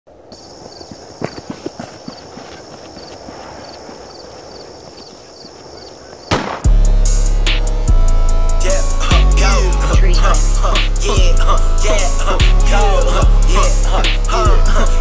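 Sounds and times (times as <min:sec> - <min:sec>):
insect chirping: 0:00.1 - 0:06.6
hip hop beat with deep bass: 0:06.6 - 0:15.0.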